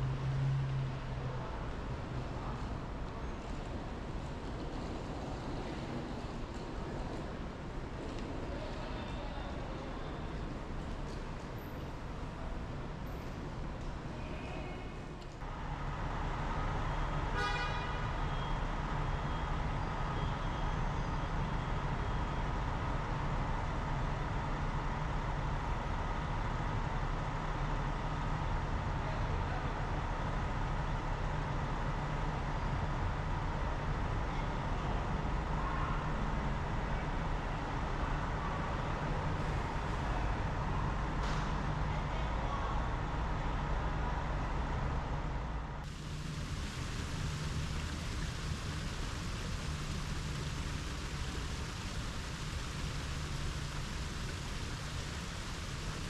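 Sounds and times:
traffic noise: 0:00.0 - 0:56.0
vehicle engine rumbling: 0:42.9 - 0:56.0
faint steady whine: 0:45.9 - 0:56.0.

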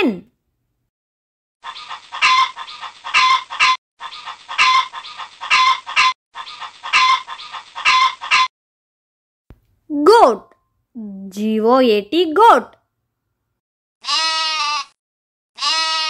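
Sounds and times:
hens clucking: 0:01.6 - 0:08.5.

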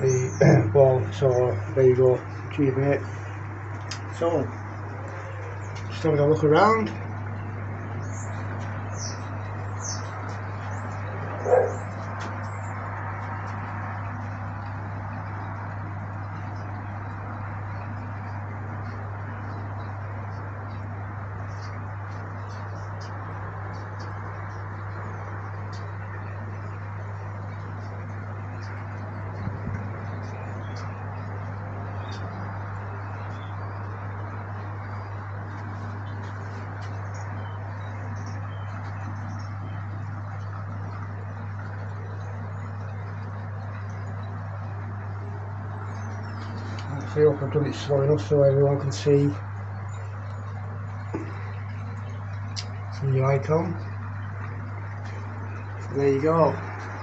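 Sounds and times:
birds chirping: 0:00.0 - 0:57.0
steady low hum: 0:00.0 - 0:57.0
dog barking: 0:11.3 - 0:11.9.

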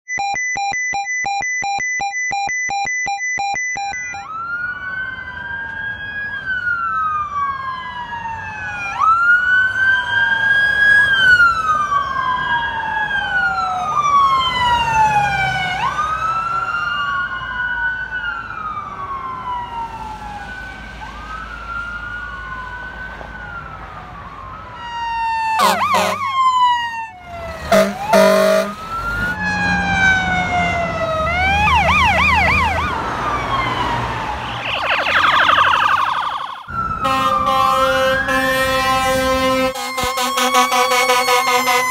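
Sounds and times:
electronic police sirens wailing: 0:00.1 - 0:41.9
horn blast: 0:25.6 - 0:26.3, 0:27.7 - 0:28.9, 0:37.0 - 0:41.9
steady horn tones: 0:25.6 - 0:26.4, 0:27.6 - 0:29.3, 0:36.9 - 0:41.9.

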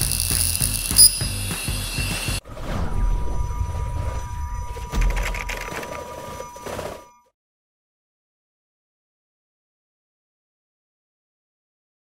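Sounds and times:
music with held tones: 0:00.0 - 0:02.4
background music: 0:00.0 - 0:07.3.

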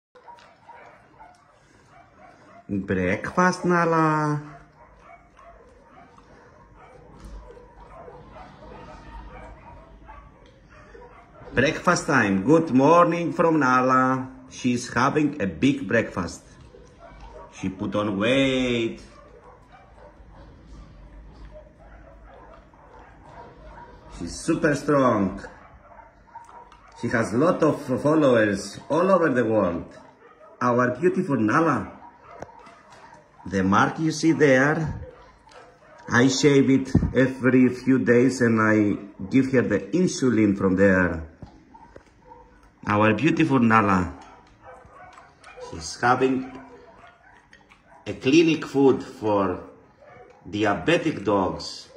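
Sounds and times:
dog chewing and crunching kibble: 0:00.2 - 0:51.9.

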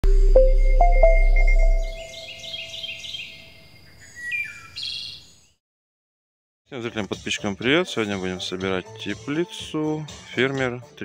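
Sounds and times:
held musical tone: 0:00.0 - 0:02.8
songbirds chirping: 0:00.8 - 0:05.6.

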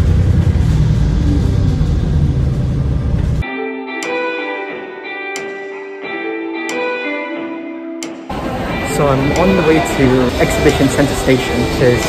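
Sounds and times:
loud low rumble: 0:00.0 - 0:03.4
guitar background music: 0:03.4 - 0:12.0.

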